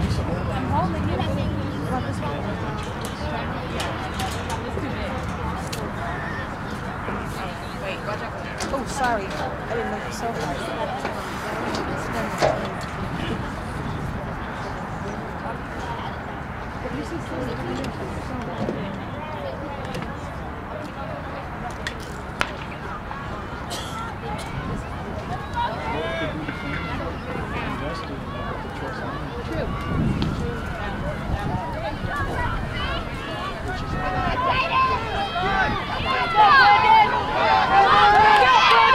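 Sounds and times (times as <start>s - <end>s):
low outdoor rumble: 0.0s - 8.6s
background chatter: 0.0s - 38.9s
distant voices: 0.0s - 38.9s.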